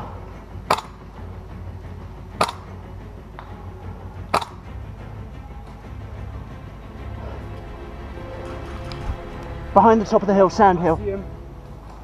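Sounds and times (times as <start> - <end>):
background music: 0.0 - 12.0
airsoft gun shots: 0.7 - 1.0, 2.4 - 2.6, 4.3 - 4.6.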